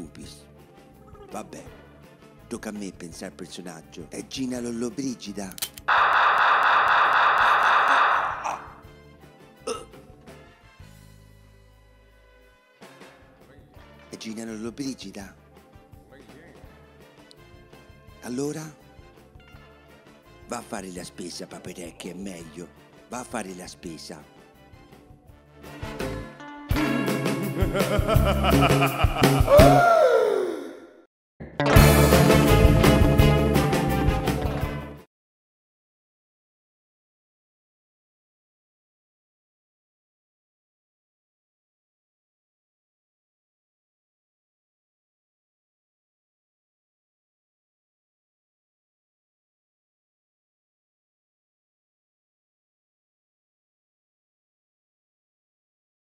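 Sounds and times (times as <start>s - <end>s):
loud sound effect: 5.9s - 8.8s
cartoon voice sighing: 8.2s - 8.8s, 29.4s - 31.0s
upbeat music with steady beat: 26.7s - 29.8s.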